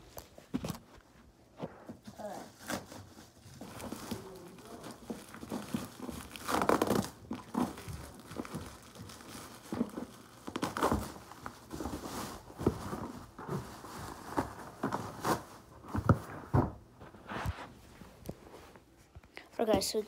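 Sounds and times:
plastic packaging crinkling: 2.2s - 18.3s.

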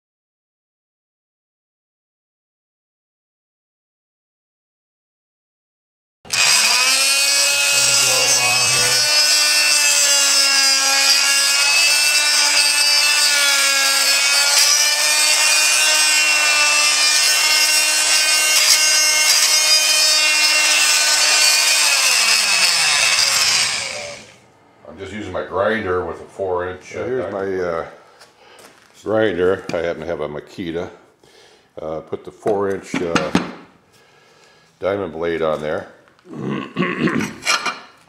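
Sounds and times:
angle grinder whining: 6.3s - 27.4s.

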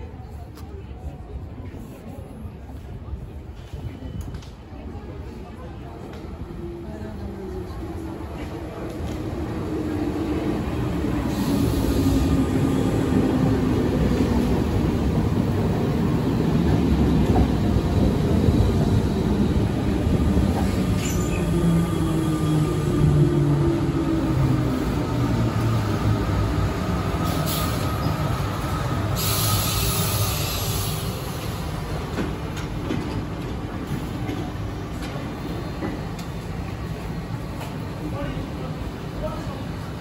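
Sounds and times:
train wheels rumbling on rails: 0.0s - 40.0s.

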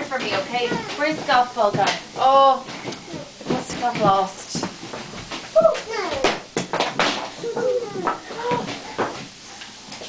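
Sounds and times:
children shouting and squealing: 7.4s - 9.1s.

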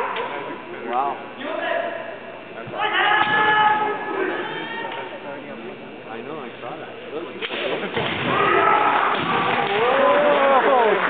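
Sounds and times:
fencers shouting: 2.8s - 5.1s, 8.2s - 11.0s.

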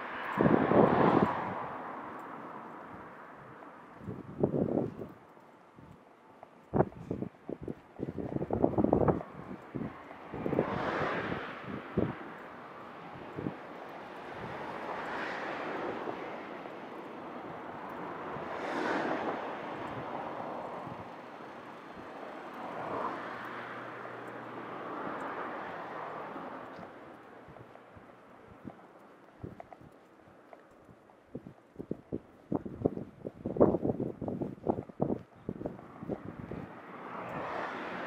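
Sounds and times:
wind buffeting microphone: 0.0s - 6.0s, 6.6s - 38.0s
cars passing on road: 0.0s - 38.0s.

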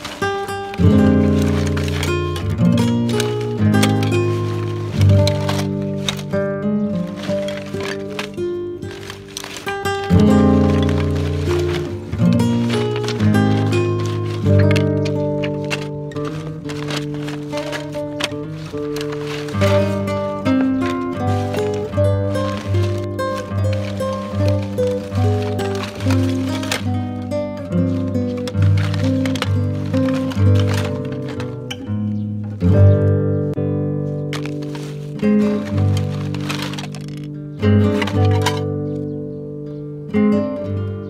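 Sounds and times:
plucked melody: 0.0s - 41.0s.

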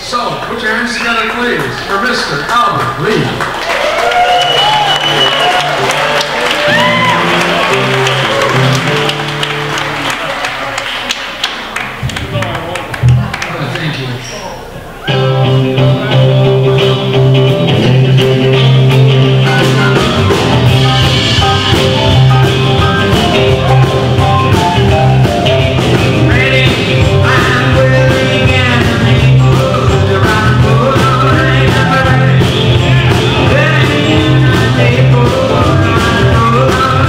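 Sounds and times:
live rock band playing: 2.9s - 13.4s, 14.9s - 37.0s
electric guitar: 3.5s - 13.4s, 14.9s - 37.0s
man singing into microphone: 26.1s - 37.0s.

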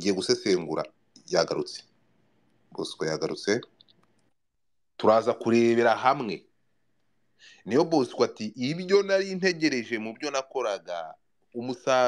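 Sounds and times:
faint clicks: 3.6s - 4.4s
person speaking: 7.4s - 12.0s.

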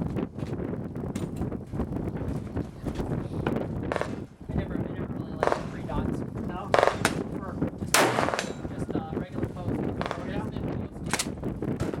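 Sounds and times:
shotgun firing: 6.8s - 7.2s, 7.9s - 8.7s, 10.0s - 10.4s.

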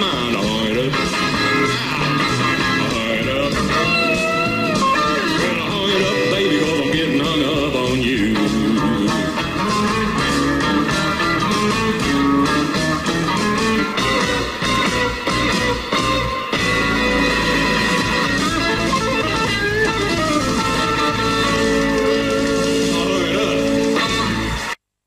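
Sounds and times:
upright bass: 0.0s - 24.7s
acoustic guitar rhythm: 0.0s - 24.8s
steel guitar lead: 0.0s - 24.8s.

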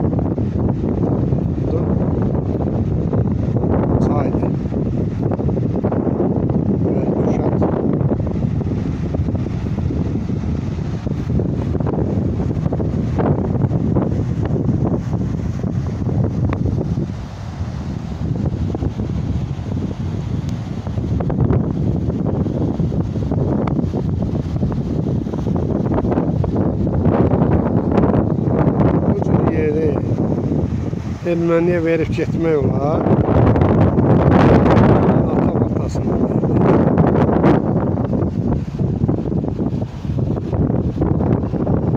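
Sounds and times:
turbulent river rushing: 0.0s - 41.9s
wind buffeting microphone: 0.0s - 41.9s.

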